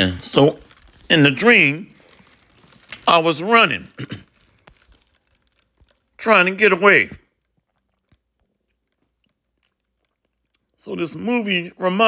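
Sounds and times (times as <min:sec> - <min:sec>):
person speaking: 0:00.0 - 0:05.2, 0:06.1 - 0:07.4, 0:10.8 - 0:12.0.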